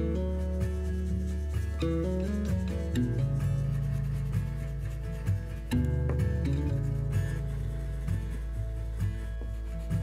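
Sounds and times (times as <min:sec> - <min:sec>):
background music: 0:00.0 - 0:10.0
crayon rubbing across paper: 0:00.0 - 0:10.0.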